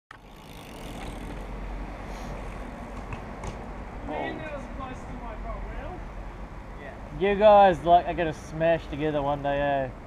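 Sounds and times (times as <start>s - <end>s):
bike tyres rolling on concrete: 0.1s - 5.2s.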